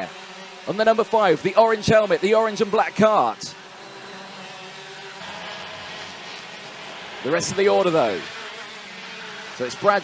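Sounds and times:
kart engines buzzing: 0:00.0 - 0:10.0.

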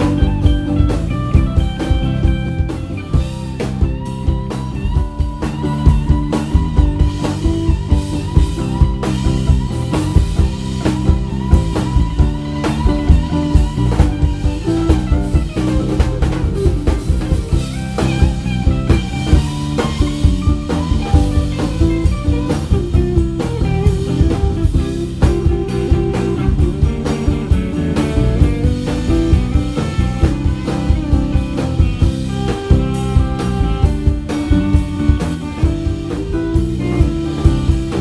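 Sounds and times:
drum kit beat: 0:00.0 - 0:38.0
electric guitars: 0:00.0 - 0:38.0.

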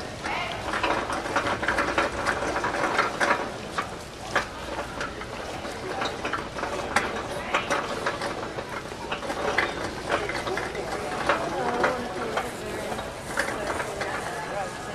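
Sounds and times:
cart rolling on concrete: 0:00.0 - 0:14.9.

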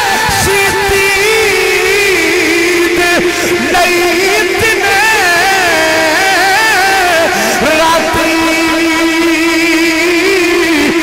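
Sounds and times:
man singing long note: 0:00.0 - 0:11.0.

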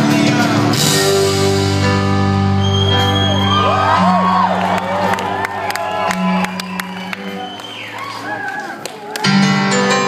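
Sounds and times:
audience whooping and cheering: 0:02.4 - 0:09.8
scattered clapping: 0:04.6 - 0:09.5.

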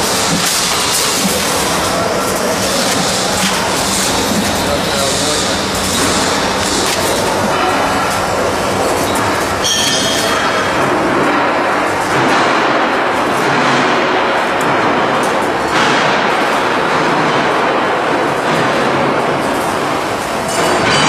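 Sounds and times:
packing machine running: 0:00.0 - 0:21.0.

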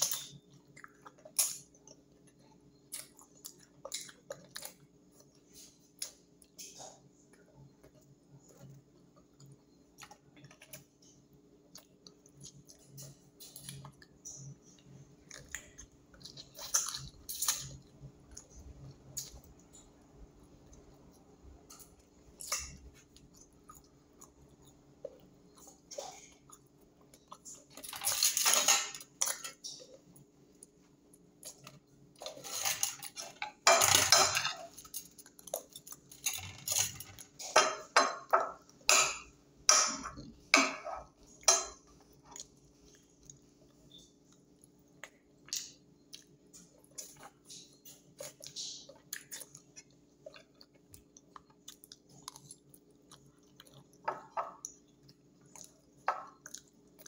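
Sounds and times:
faint steady hum: 0:00.0 - 0:57.0
person chewing and lip-smacking: 0:41.2 - 0:57.0.

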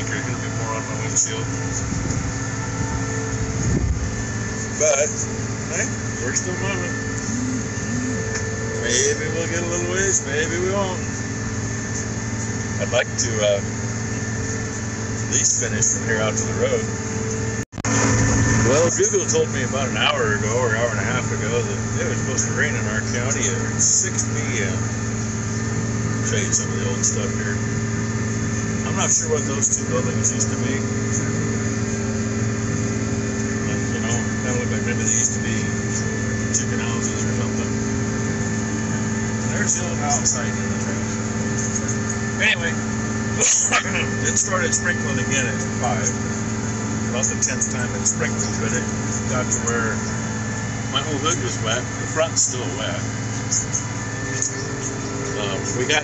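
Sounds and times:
tractor engine running: 0:00.0 - 0:56.0.

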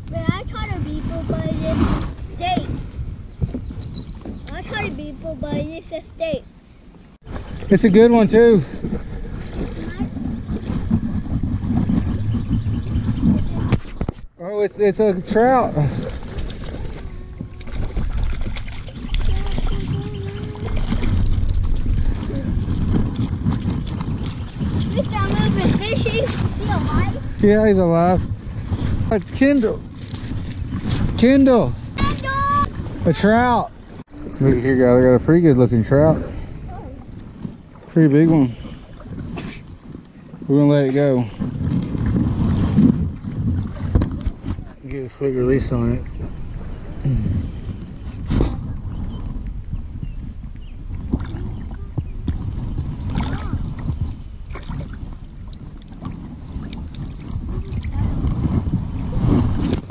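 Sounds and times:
wind rumbling on microphone: 0:00.0 - 0:59.9
fish splashing in water: 0:15.8 - 0:26.6.

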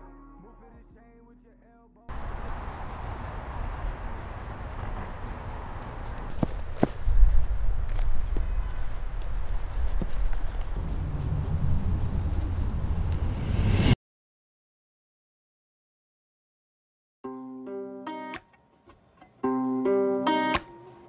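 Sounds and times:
footsteps on sand: 0:02.1 - 0:11.6
low rumble: 0:10.2 - 0:14.0.

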